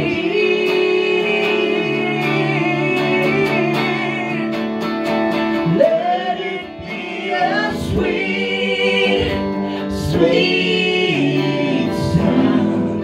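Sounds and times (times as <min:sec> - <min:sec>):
man and woman singing: 0:00.0 - 0:04.8, 0:05.5 - 0:13.0
electric guitar: 0:00.0 - 0:13.0.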